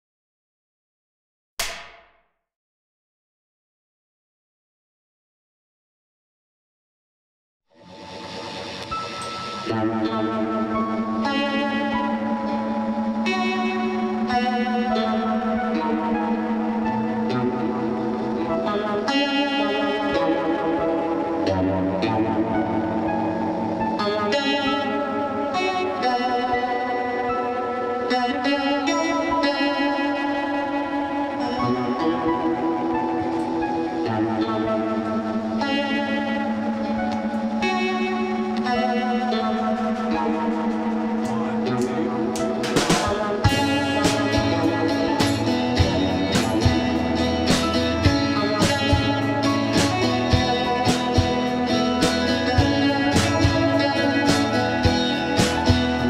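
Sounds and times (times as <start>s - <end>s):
guitar and keyboard chords: 7.8s - 56.0s.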